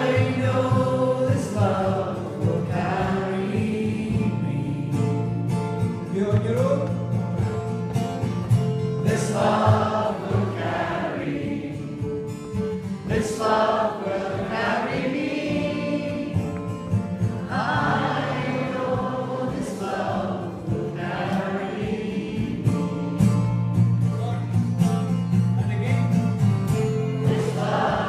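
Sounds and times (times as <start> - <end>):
crowd singing folk song: 0.0 - 6.2, 8.2 - 24.0, 26.7 - 28.0.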